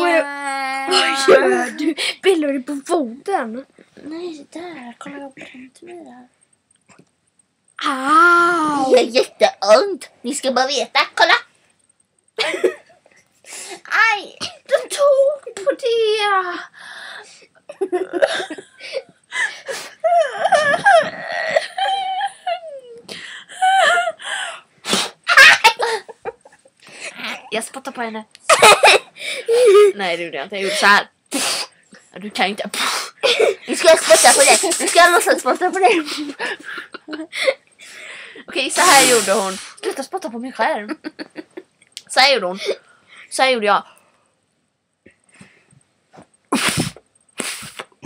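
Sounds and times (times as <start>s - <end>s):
girls laughing and squealing: 20.0s - 23.0s, 25.2s - 26.6s
person spluttering spitting sound: 46.5s - 48.0s.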